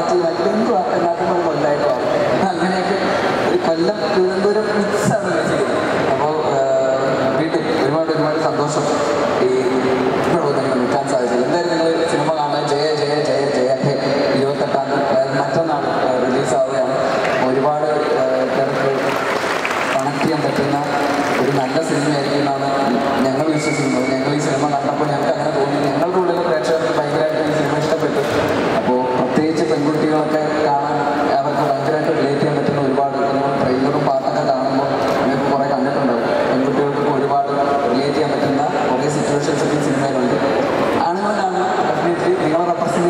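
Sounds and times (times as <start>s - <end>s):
man speaking into a microphone: 0.0s - 43.0s.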